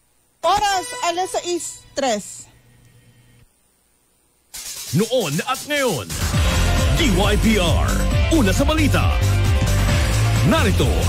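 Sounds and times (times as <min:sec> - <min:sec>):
faint low hum: 0:00.0 - 0:04.5
person speaking: 0:04.9 - 0:06.1, 0:06.8 - 0:09.3.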